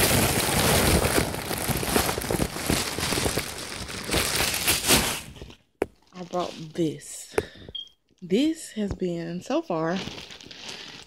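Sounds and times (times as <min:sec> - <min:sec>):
plastic bag crinkling: 0:00.0 - 0:07.0, 0:09.8 - 0:11.0.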